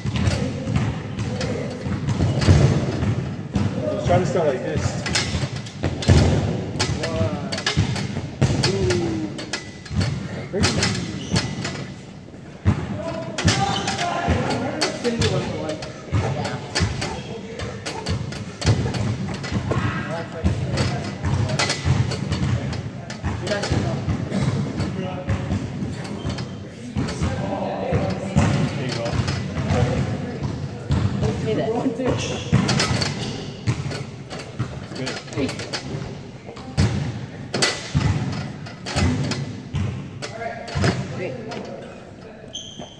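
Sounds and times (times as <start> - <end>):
knocks and thuds from exercising: 0.0 - 42.0.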